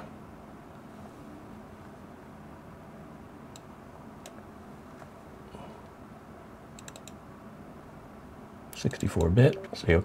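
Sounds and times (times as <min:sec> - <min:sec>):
computer mouse clicking: 0:03.5 - 0:04.4, 0:06.8 - 0:07.2.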